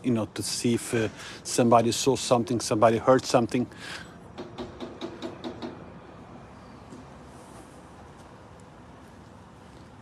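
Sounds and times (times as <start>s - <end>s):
rapid knocking on door: 4.4s - 5.8s.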